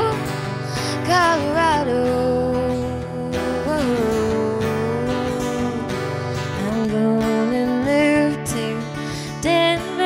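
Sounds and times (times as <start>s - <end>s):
strummed acoustic guitar: 0.0s - 10.0s
woman singing: 0.0s - 10.0s.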